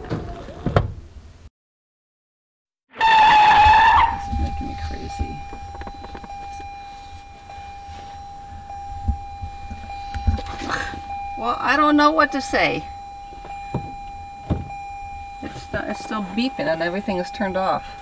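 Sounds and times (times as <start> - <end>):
car electronic warning tone: 3.0 - 18.0
sharp knocks: 13.4 - 14.8.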